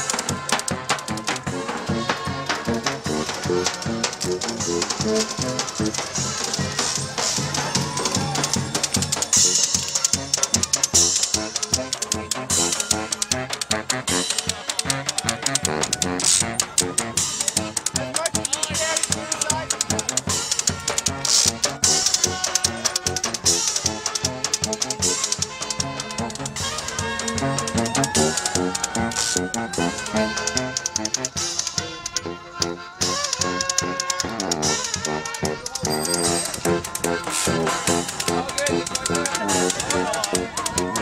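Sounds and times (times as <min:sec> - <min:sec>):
street band playing lively dance: 0:00.0 - 0:41.0.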